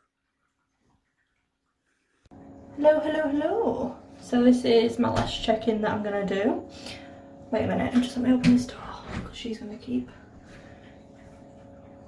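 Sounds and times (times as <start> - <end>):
faint high hum: 2.3 - 12.0.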